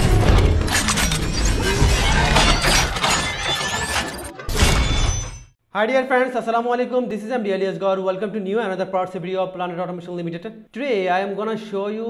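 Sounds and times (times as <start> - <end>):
shattering crash: 0.0 - 5.5.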